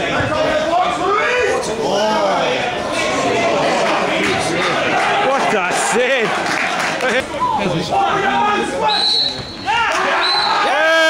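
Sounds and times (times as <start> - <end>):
referee's whistle blasts: 8.8 - 10.7.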